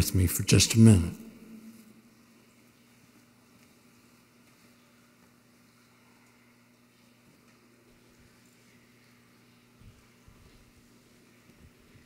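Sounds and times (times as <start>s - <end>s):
person speaking: 0.0s - 1.7s
faint low hum: 0.0s - 12.0s.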